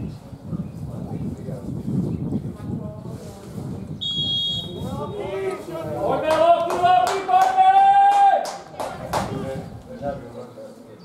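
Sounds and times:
low voices: 0:00.0 - 0:11.0
referee's whistle blast: 0:04.0 - 0:04.8.

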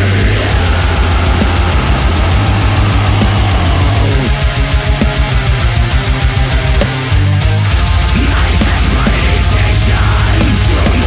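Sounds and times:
distorted metal band: 0:00.0 - 0:11.0
fast low drum beats: 0:00.0 - 0:11.0.

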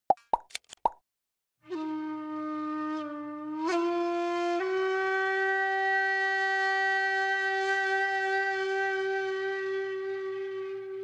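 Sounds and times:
quick pops: 0:00.1 - 0:01.0.

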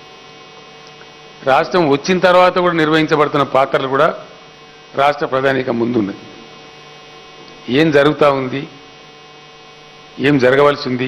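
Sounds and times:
electrical mains hum: 0:00.0 - 0:11.0
man speaking: 0:01.4 - 0:06.5, 0:07.6 - 0:08.8, 0:10.2 - 0:11.0.

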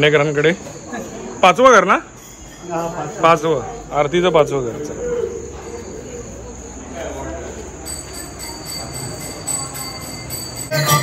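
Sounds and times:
crickets chirring: 0:00.0 - 0:11.0
faint voices: 0:00.0 - 0:11.0.

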